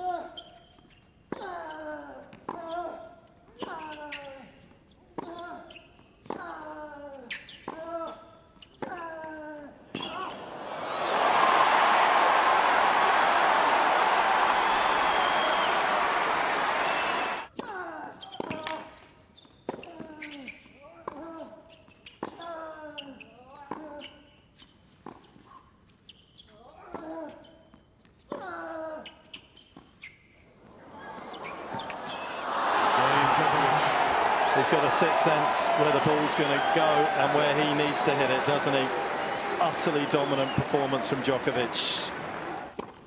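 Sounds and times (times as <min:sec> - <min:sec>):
crowd cheering and clapping: 0:10.1 - 0:17.5, 0:30.7 - 0:42.8.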